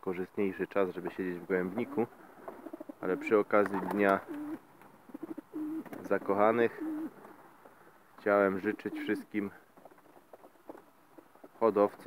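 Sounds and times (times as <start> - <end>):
pigeons cooing: 1.1 - 7.4, 8.5 - 9.4.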